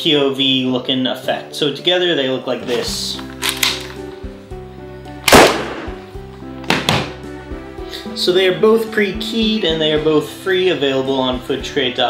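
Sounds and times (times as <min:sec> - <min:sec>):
background music: 0:00.0 - 0:12.0
pistol gunshot: 0:05.2 - 0:06.0.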